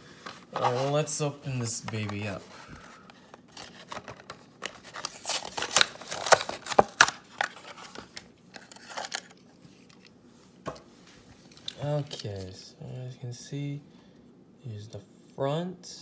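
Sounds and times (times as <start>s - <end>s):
plastic packaging crackling: 3.4s - 10.0s.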